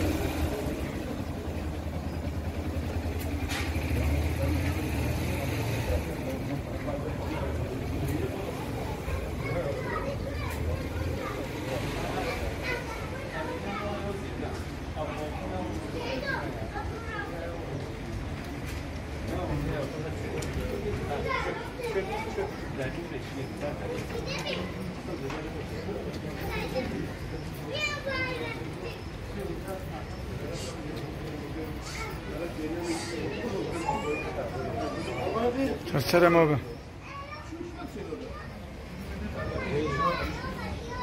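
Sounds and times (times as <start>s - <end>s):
adults talking: 0.0s - 41.0s
indistinct street chatter: 0.0s - 41.0s.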